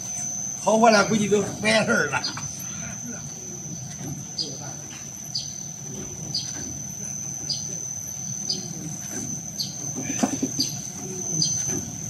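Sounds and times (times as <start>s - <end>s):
high-pitched machine whine: 0.0s - 12.0s
low motor hum: 0.0s - 12.0s.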